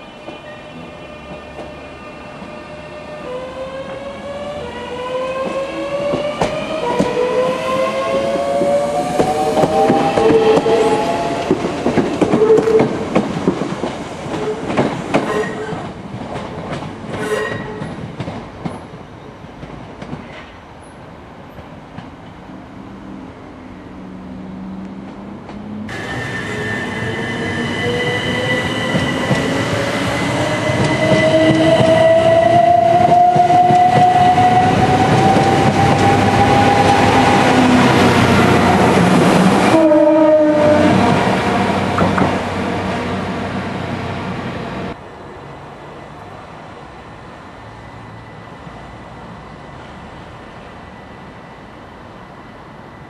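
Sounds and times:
train running with rising tone: 0.0 - 53.0
train wheels clicking over rail joints: 11.4 - 19.0.

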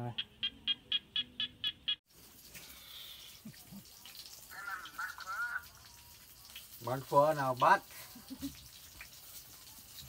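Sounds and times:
night animal chirping: 0.1 - 2.0
faint hiss: 2.1 - 4.7.

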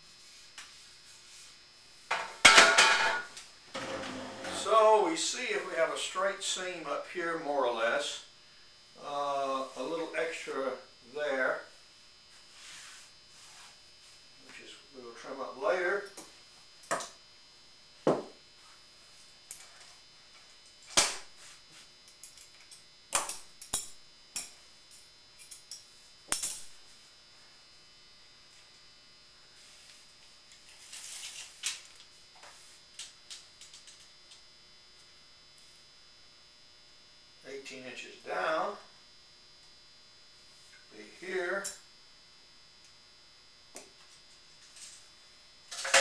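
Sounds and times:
faint electrical hum: 0.0 - 46.0.

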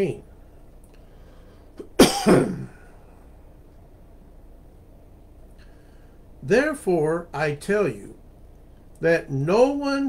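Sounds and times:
room hum: 0.0 - 10.0
man coughing: 1.9 - 2.9.

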